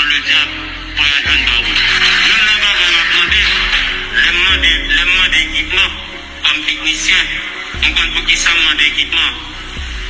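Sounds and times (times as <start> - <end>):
electronic music with bass hits: 0.0 - 10.0.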